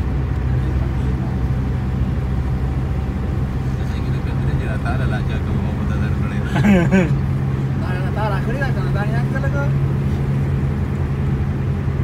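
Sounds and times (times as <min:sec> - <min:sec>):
low engine drone: 0:00.0 - 0:12.0
road noise: 0:00.0 - 0:12.0.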